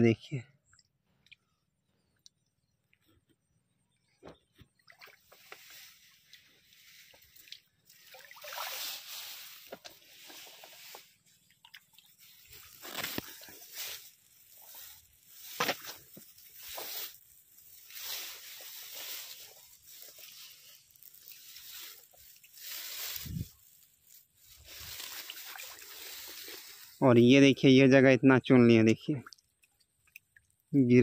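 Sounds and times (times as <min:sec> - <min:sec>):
hand splashing in shallow water: 0:04.8 - 0:10.2.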